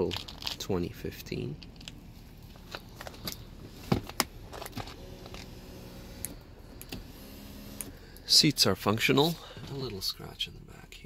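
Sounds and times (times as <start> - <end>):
seat motor humming: 3.5 - 8.2.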